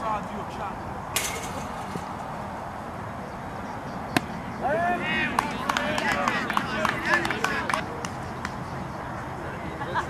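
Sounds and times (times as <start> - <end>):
voices calling out: 0.0 - 10.0
sharp bat crack: 1.2 - 2.4, 4.1 - 4.4
ball smack: 4.1 - 4.4.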